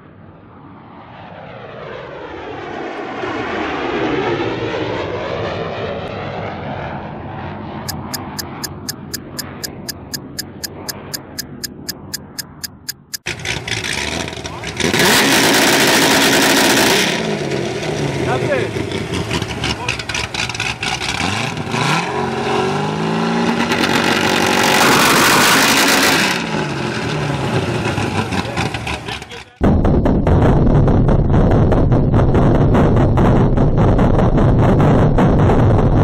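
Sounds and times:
film countdown ticking: 7.9 - 13.3
car engine revving: 7.9 - 29.6
car engine idling: 17.2 - 21.2, 27.2 - 29.6.

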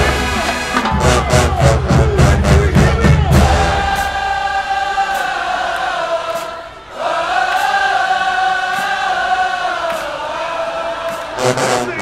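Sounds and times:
marching band drums: 0.0 - 4.5
band singing held notes in unison: 0.0 - 12.0
low brass: 11.4 - 12.0.

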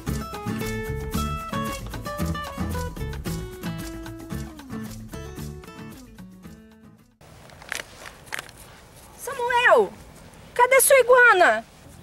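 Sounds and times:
faint outdoor background: 0.0 - 12.0
short rustling scuffing sounds: 7.2 - 12.0.

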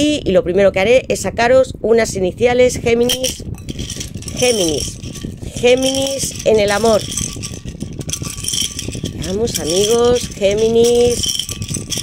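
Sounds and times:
letter pieces rattling in a cup: 3.1 - 12.0.

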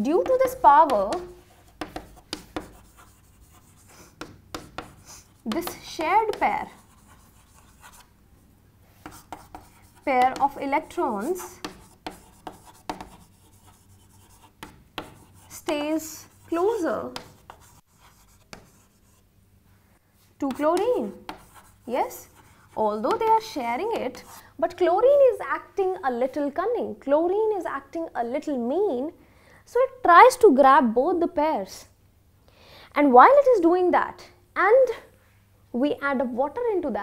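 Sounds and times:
chalk scratching: 0.1 - 8.1, 8.9 - 19.3, 20.4 - 24.4
chalk taps on chalkboard: 0.2 - 8.0, 9.0 - 19.1, 20.5 - 21.8, 22.4 - 24.3.

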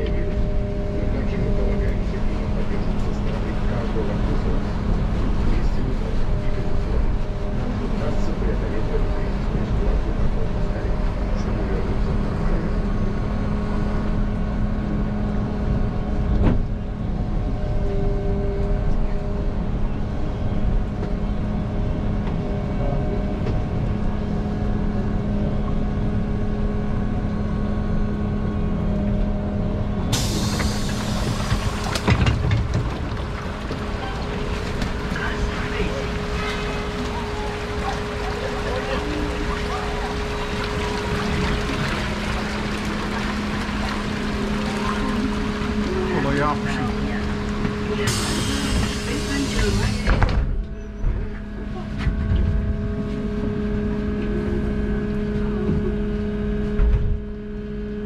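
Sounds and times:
tyres rumbling through water: 0.0 - 18.6, 30.1 - 50.6
street noise: 0.0 - 57.9
bus hum: 0.0 - 58.0
bus doors hissing open: 30.1 - 32.8, 47.6 - 50.6.

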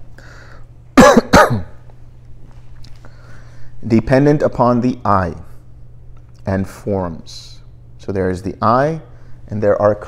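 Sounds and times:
man coughing: 1.0 - 1.8.

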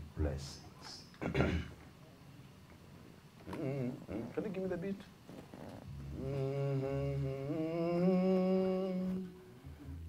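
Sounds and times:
man humming into microphone: 3.4 - 4.5, 5.4 - 10.0.

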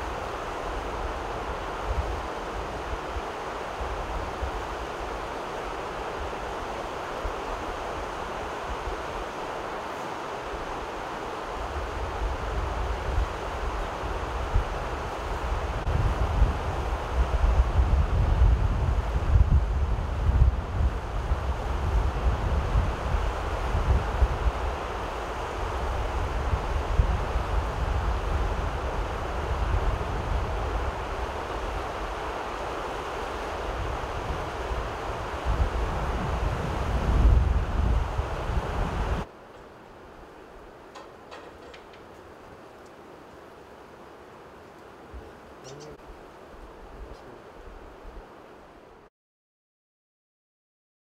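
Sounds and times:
river rushing over rocks: 0.0 - 15.8
wind buffeting microphone: 11.5 - 39.3.

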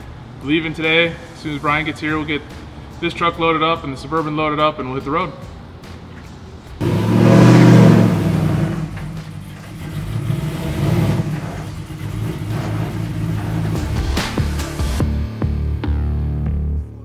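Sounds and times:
car engine revving: 6.8 - 15.0.

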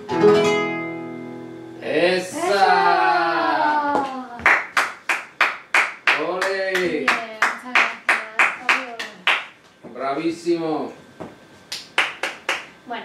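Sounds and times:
rhythmic handclaps: 4.0 - 9.7, 11.7 - 12.8.

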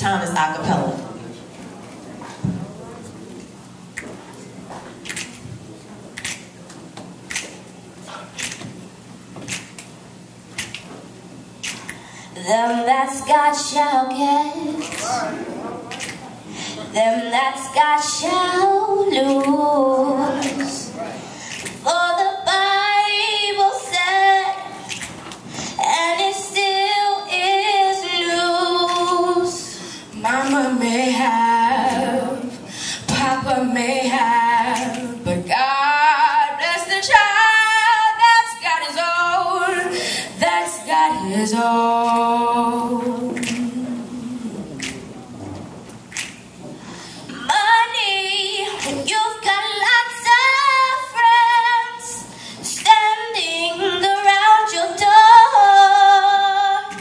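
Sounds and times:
faint hum: 0.0 - 57.0
finger snaps: 3.9 - 4.2, 5.0 - 5.4, 6.2 - 6.5, 7.3 - 7.6, 8.3 - 8.7, 9.4 - 9.9, 10.5 - 10.9, 11.6 - 12.1, 21.5 - 21.8, 24.8 - 25.2, 43.3 - 43.8, 44.7 - 45.1, 46.1 - 46.5
vocal ensemble singing a cappella: 12.4 - 25.1, 25.8 - 45.6.

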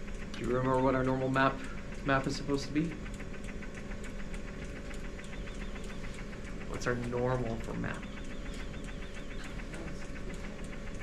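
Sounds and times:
steady machine hum: 0.0 - 11.0
valve ticking rapidly: 0.0 - 11.0.

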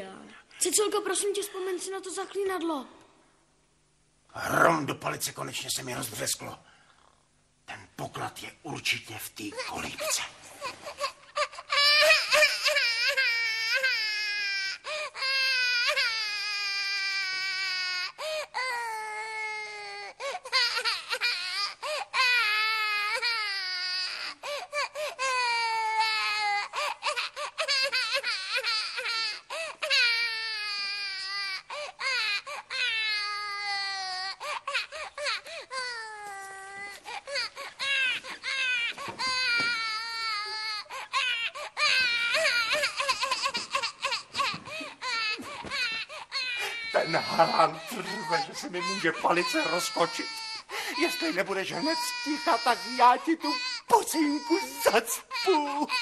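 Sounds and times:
infant crying: 9.6 - 56.0.

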